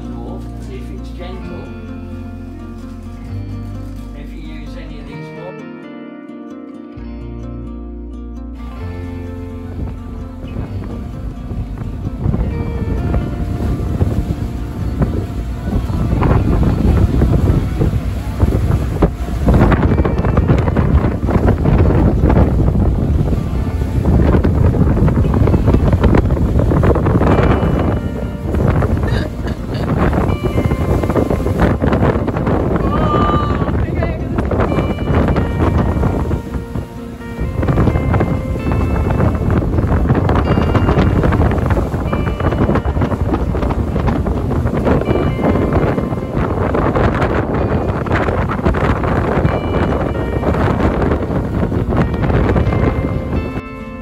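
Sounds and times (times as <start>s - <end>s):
faint music track: 0.0s - 54.0s
strong wind buffeting microphone: 8.8s - 54.0s.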